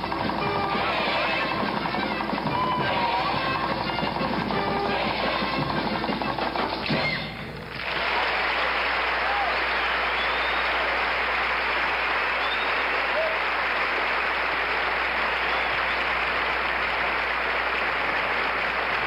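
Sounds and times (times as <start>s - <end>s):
music: 0.0s - 7.7s
audience applause: 0.0s - 19.0s
short cries from audience: 12.4s - 13.5s.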